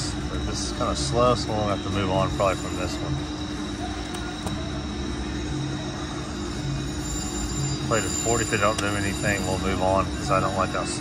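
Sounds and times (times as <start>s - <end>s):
constant low hum: 0.0s - 11.0s
murmur of slot machines and crowd: 0.0s - 11.0s
thin high tone: 0.0s - 11.0s.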